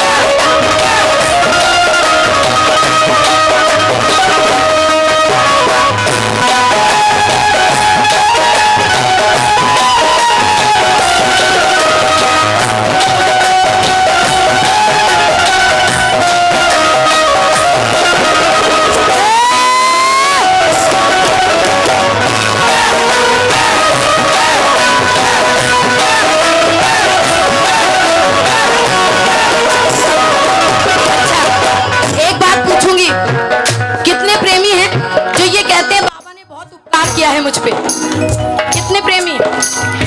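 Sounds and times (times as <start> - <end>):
devotional band playing: 0.0 - 40.0
steady drum beat: 0.0 - 40.0.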